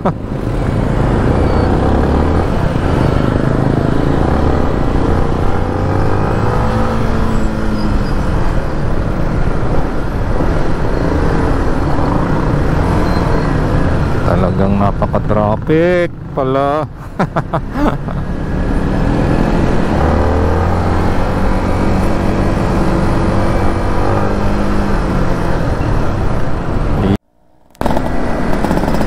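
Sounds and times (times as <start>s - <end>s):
traffic noise: 0.0s - 29.0s.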